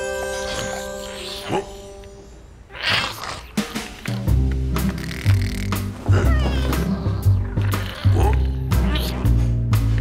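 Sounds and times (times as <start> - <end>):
high wavering cartoon vocal sounds: 0.0 - 4.3
cartoon music with bass line: 3.6 - 10.0.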